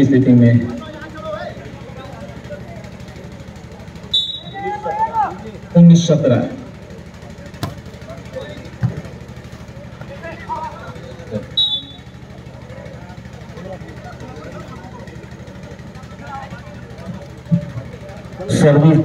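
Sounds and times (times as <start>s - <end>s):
low mechanical hum: 0.0s - 19.0s
spectators chattering: 0.0s - 19.0s
referee's whistle: 4.1s - 4.8s, 11.5s - 12.2s
volleyball hits: 7.5s - 10.1s.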